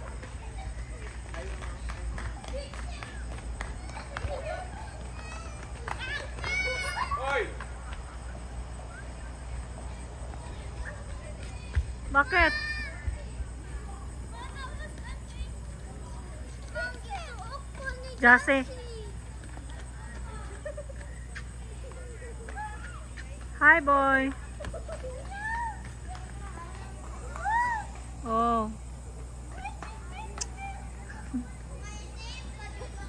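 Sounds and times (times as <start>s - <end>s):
people talking and calling out: 0.0s - 33.0s.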